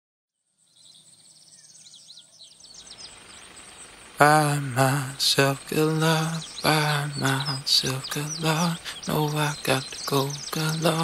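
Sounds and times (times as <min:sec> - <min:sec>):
small birds chirping: 0:00.4 - 0:11.0
soft background hiss: 0:00.6 - 0:11.0.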